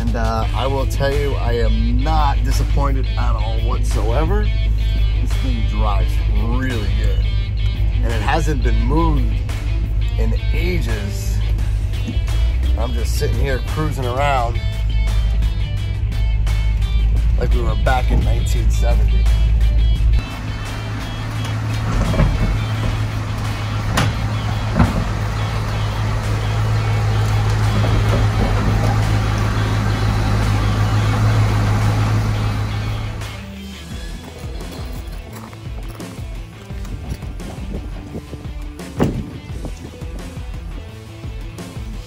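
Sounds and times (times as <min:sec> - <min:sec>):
background music: 0:00.0 - 0:42.0
car engine droning: 0:00.0 - 0:42.0
sharp knocks: 0:21.7 - 0:25.7, 0:38.9 - 0:39.4.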